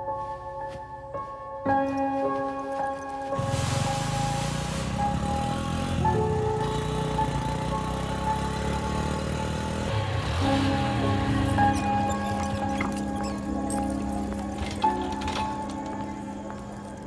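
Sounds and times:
film music with held notes: 0.0s - 17.0s
street ambience: 0.0s - 17.0s
road traffic noise: 3.2s - 17.0s.

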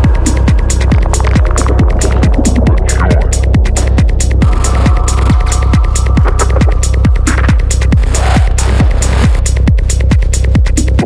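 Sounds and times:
sustained synth tone: 0.0s - 9.3s
hi-hats: 0.0s - 11.0s
kick drum: 0.0s - 11.0s
rolling bass: 0.0s - 11.0s.

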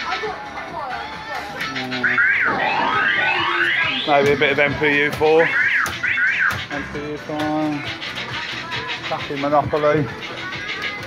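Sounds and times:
fruit machine bleeping tones: 1.6s - 6.8s.

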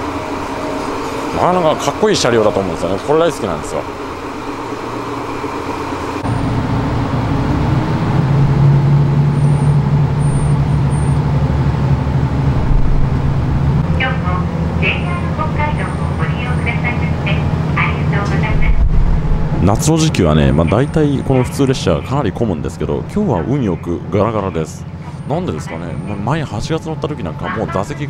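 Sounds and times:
railcar engine drone: 0.0s - 28.0s
person speaking: 19.6s - 28.0s.

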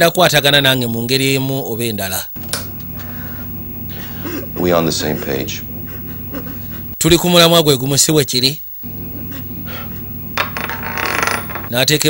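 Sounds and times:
steady low drone: 8.8s - 11.6s.

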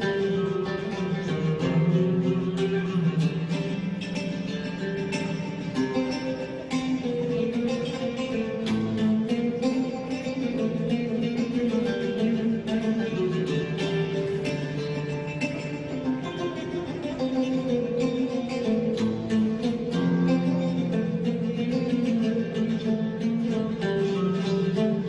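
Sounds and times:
oud and acoustic guitars playing: 0.0s - 25.0s.

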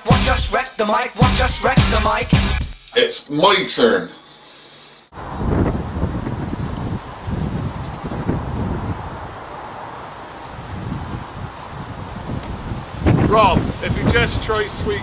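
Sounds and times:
wind buffeting microphone: 5.2s - 15.0s.

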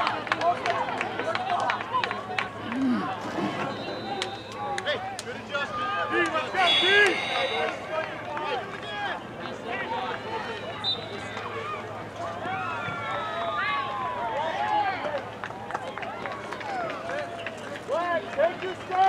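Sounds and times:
overlapping voices calling out: 0.0s - 13.0s.

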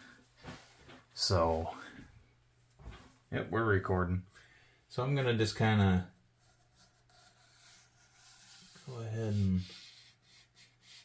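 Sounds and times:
toothpick scratching foam board: 6.4s - 11.0s.

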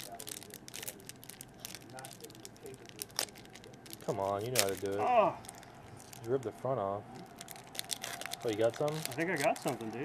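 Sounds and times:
plastic wrapper crinkling and tearing: 0.0s - 10.0s.

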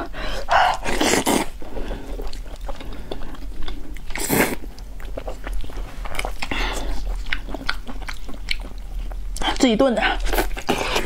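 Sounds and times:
wet mouth eating sounds: 0.5s - 11.0s.

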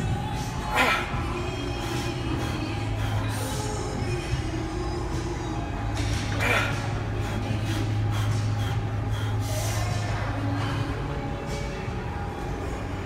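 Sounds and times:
faint music: 0.0s - 13.0s
steady low hum: 0.0s - 13.0s.

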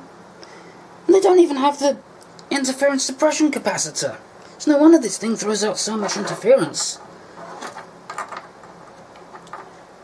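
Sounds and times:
light handling knocks and scrapes: 6.0s - 9.8s.

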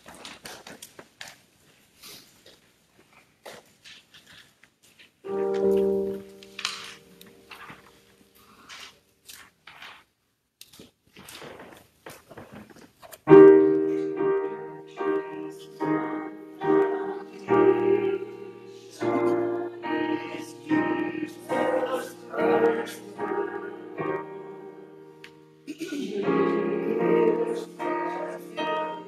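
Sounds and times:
piano chord ringing: 5.3s - 7.7s
piano hymn introduction: 5.3s - 8.9s, 13.3s - 29.0s
faint rustles and knocks: 10.8s - 13.3s.

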